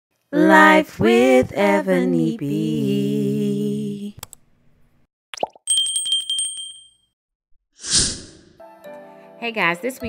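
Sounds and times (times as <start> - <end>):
bell ringing rapidly: 5.7 - 7.1.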